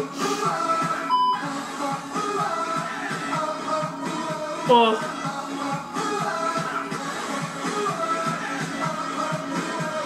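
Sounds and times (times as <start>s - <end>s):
pop music with steady beat: 0.0s - 10.0s
electronic test-tone beep: 1.1s - 1.4s.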